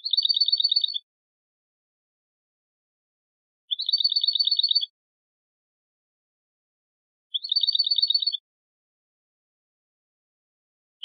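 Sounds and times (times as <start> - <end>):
bird trill: 0.0 - 1.1, 3.7 - 4.9, 7.3 - 8.4.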